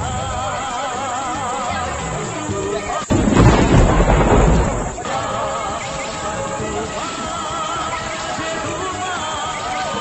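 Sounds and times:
thunder crack and rumble: 3.0s - 5.2s.

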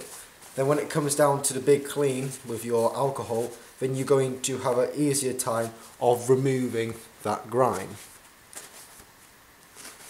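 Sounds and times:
paper towel rustling on knife: 0.0s - 10.0s.

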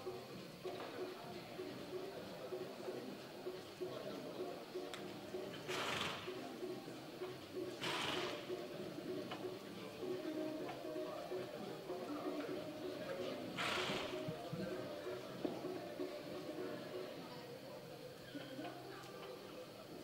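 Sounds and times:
low music: 0.0s - 17.9s
murmuring voices: 0.0s - 20.0s.

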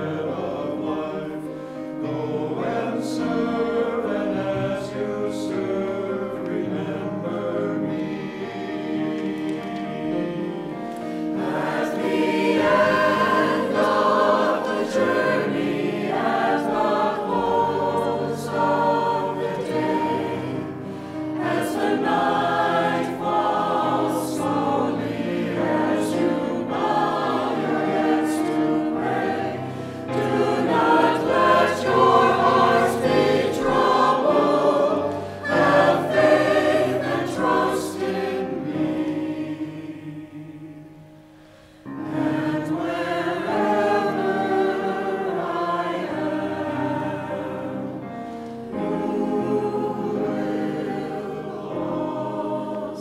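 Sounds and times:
mixed choir singing: 0.0s - 53.0s.

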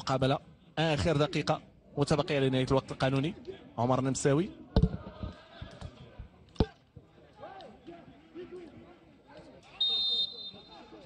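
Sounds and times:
referee whistle blast: 9.8s - 10.8s.

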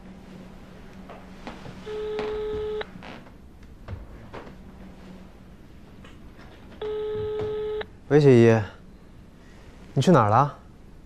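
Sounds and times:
telephone ringback beep: 1.9s - 2.8s, 6.8s - 7.8s.

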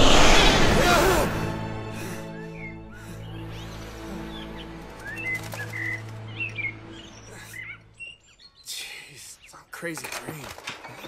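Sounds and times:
small birds chirping: 2.0s - 11.0s.

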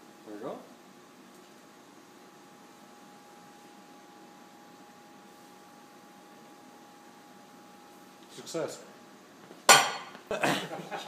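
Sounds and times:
air spindle hiss and whine: 0.0s - 11.0s.

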